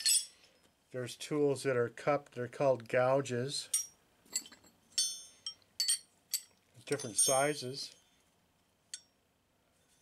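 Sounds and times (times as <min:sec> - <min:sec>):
steel gouges clinking: 0:03.7 - 0:08.0.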